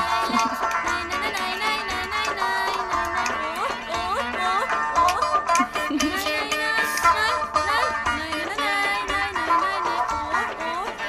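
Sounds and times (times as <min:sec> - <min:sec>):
hand-drum beat: 0:00.0 - 0:11.0
plucked string instrument runs: 0:00.0 - 0:11.0.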